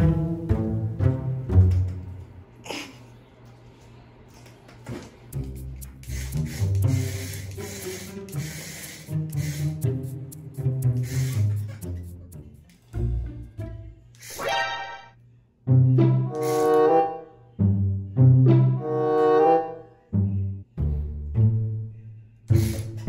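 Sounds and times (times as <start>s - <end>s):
low cello and double bass: 0.0s - 2.3s, 15.6s - 23.0s.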